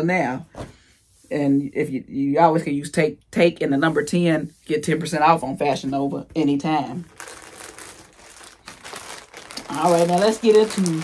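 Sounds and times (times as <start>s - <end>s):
plastic bag crinkling: 6.8s - 11.0s.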